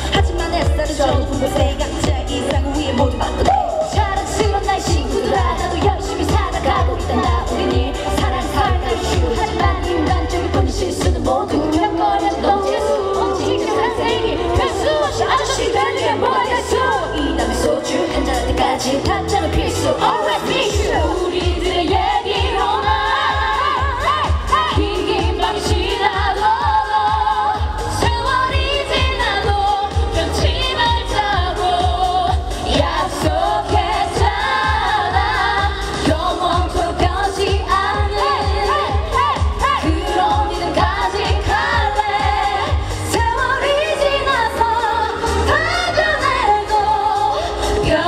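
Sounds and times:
pop backing track with bass beat: 0:00.0 - 0:48.0
woman singing into microphone: 0:00.0 - 0:48.0.

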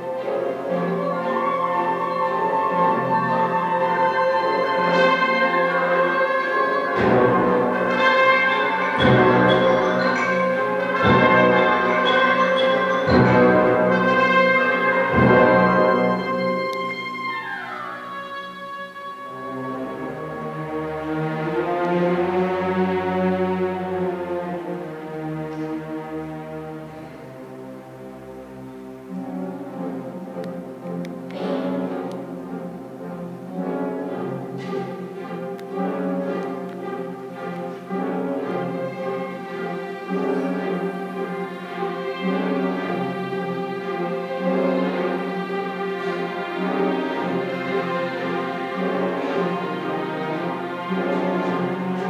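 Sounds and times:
symphony orchestra with loud brass: 0:00.0 - 0:52.0.

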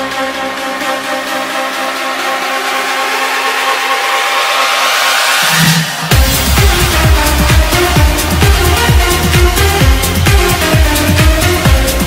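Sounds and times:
dance beat and bass: 0:00.0 - 0:12.0
held synth chords: 0:00.0 - 0:12.0
rising noise sweep: 0:02.8 - 0:10.3.

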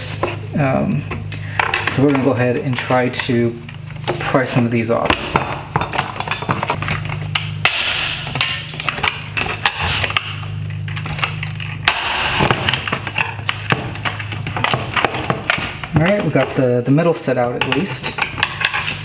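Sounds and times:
steady low hum: 0:00.0 - 0:19.0
screwdriver prying and scraping plastic: 0:08.3 - 0:16.6, 0:17.6 - 0:19.0.

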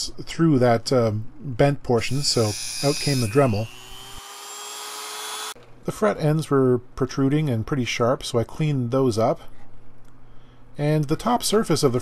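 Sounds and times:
rotary tool cutting screw: 0:02.0 - 0:05.6.

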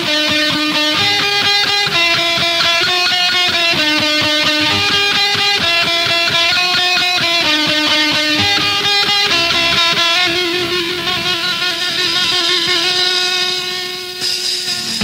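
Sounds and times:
electric guitar punk riff: 0:00.0 - 0:15.0.

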